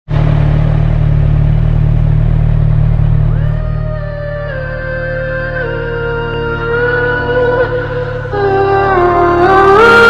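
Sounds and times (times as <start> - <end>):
motorcycle engine idling: 0.1 - 10.0
music with gliding tone: 3.2 - 10.0.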